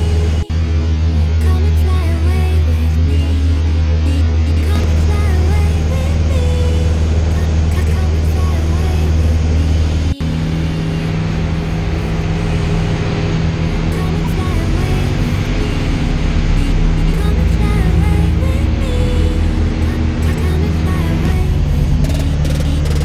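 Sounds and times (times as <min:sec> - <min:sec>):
aircraft piston engine droning: 0:00.0 - 0:23.0
music playing: 0:00.0 - 0:23.0.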